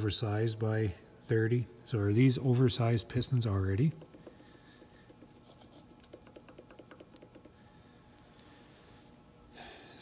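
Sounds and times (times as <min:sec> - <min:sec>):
fingers rubbing on piston: 0:03.8 - 0:07.6.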